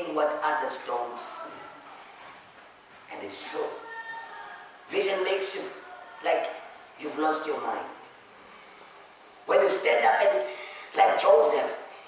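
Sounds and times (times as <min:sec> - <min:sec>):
man preaching loudly: 0:00.0 - 0:01.7, 0:03.1 - 0:08.0, 0:09.5 - 0:11.9.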